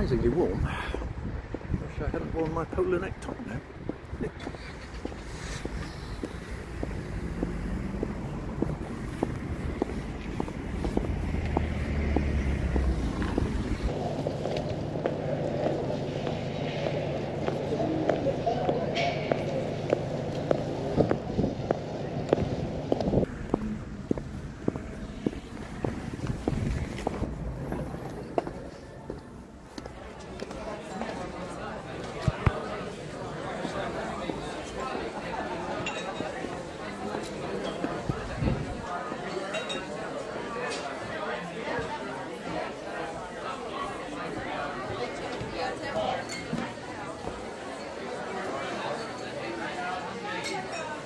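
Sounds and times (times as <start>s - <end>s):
wind noise: 0.0s - 13.9s, 20.9s - 28.4s, 38.0s - 38.8s
traffic: 0.0s - 51.0s
footsteps on paving: 2.4s - 15.8s, 19.9s - 31.2s.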